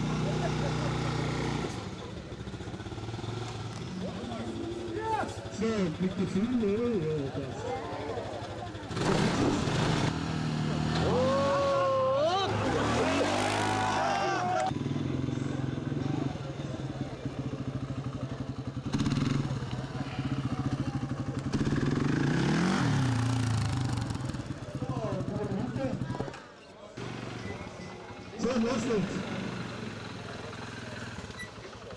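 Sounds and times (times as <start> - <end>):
quad engines humming: 0.0 - 31.9
engine revving: 8.8 - 16.4, 18.8 - 20.8, 21.4 - 24.5.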